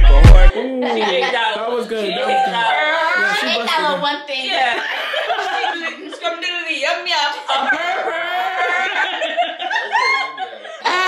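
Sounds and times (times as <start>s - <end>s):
people laughing: 0.5s - 6.7s, 7.3s - 11.0s.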